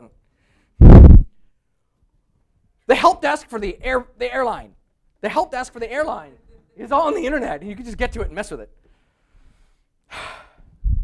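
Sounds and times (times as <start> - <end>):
low thump: 0.8 - 1.3.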